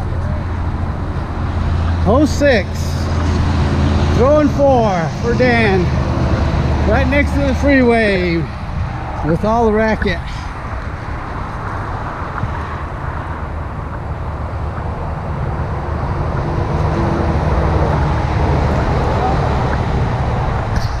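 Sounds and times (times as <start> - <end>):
freeway traffic rushing: 0.0 - 21.0.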